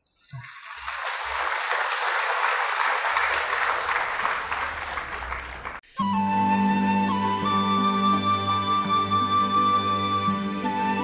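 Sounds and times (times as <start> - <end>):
audience applauding: 0.3 - 5.8.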